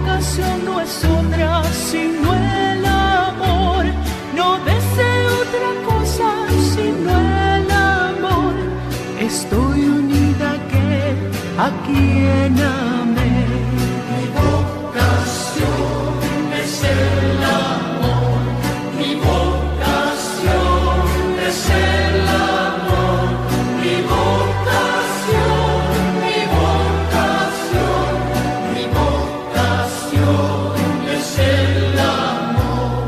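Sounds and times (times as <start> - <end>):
steady bass notes: 0.0 - 33.0
choir singing: 14.1 - 33.0.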